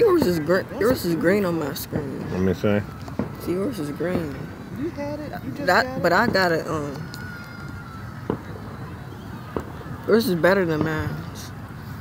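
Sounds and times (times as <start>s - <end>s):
distant fireworks bangs: 8.2s - 11.6s.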